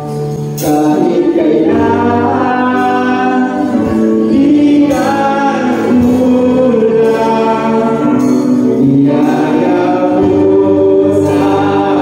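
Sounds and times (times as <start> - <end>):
keyboard guitars and drums: 0.0 - 12.0
voices singing praise song: 0.0 - 12.0.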